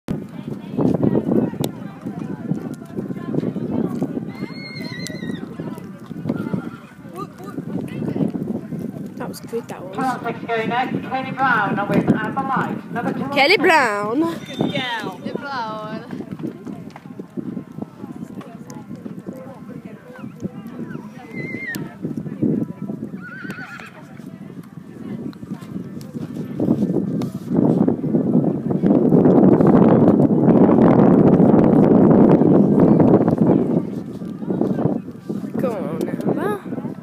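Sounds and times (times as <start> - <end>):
wind noise on microphone: 0.1 - 37.0
horse whinnying: 4.4 - 5.5, 21.2 - 21.9, 23.2 - 24.0.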